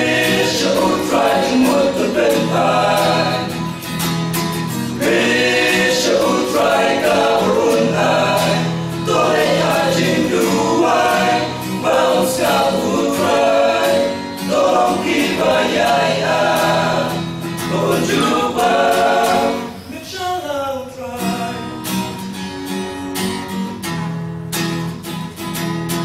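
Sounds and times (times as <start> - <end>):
male vocal group singing gospel: 0.0 - 3.8, 4.9 - 20.2.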